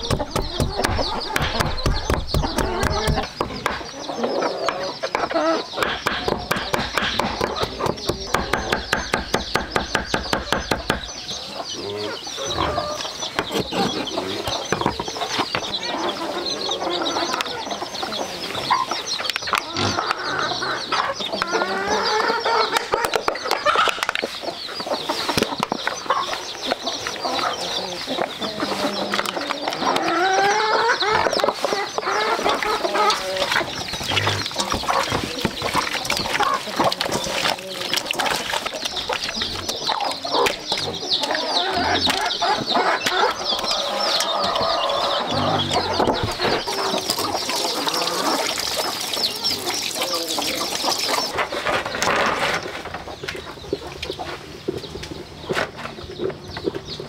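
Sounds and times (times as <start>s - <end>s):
knife chopping on a board: 0.0s - 3.9s, 5.8s - 11.1s
chickens clucking: 0.0s - 57.0s.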